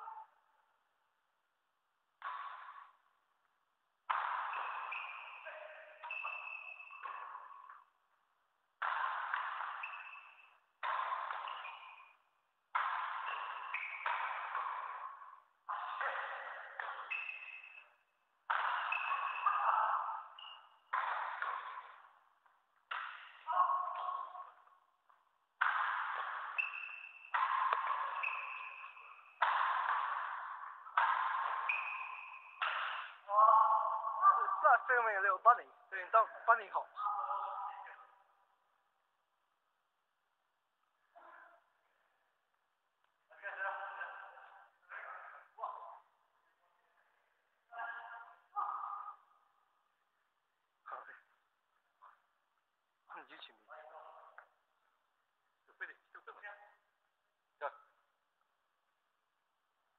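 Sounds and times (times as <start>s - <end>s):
badminton shuttlecock hits: 2.2s - 3.1s, 4.0s - 8.0s, 8.7s - 34.6s.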